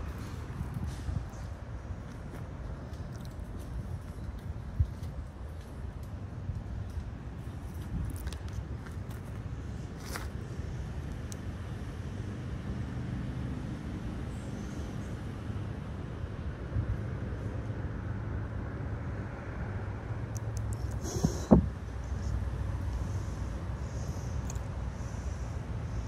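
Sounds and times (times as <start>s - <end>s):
distant road traffic rumble: 0.0s - 26.0s
faint engine hum: 0.0s - 26.0s.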